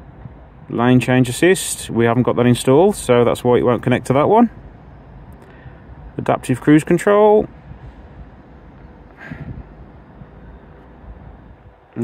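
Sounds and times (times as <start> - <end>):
low background rumble and hiss: 0.0 - 12.0.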